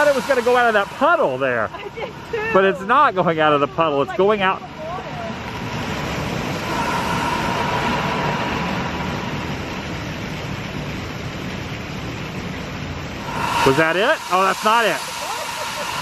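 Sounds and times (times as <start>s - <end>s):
geyser spraying water: 0.0s - 16.0s.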